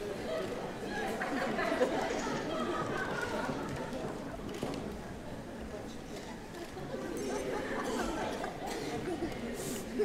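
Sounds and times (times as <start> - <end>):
voices murmuring and chattering: 0.0 - 10.0.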